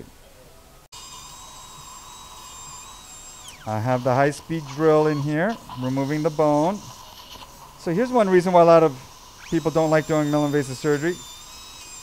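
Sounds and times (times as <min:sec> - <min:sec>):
surgical drill whining: 0:00.9 - 0:12.0.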